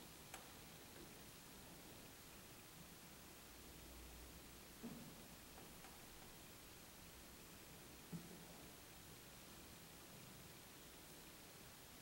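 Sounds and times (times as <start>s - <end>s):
faint click: 0.3s - 1.1s.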